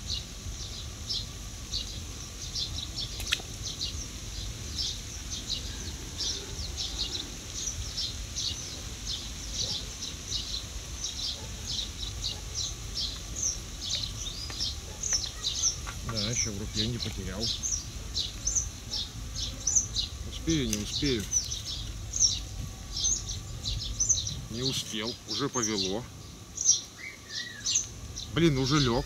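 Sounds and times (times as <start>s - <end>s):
small birds chirping: 0.0s - 29.0s
sharp click: 3.2s - 3.5s.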